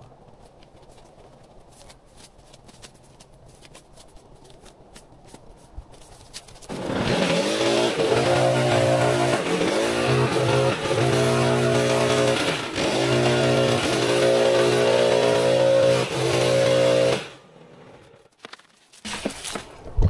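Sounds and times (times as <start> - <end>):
leaf blower running: 6.7 - 18.0.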